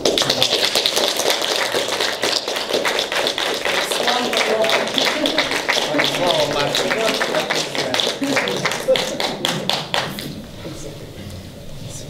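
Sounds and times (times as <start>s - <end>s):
audience applauding: 0.0s - 10.5s.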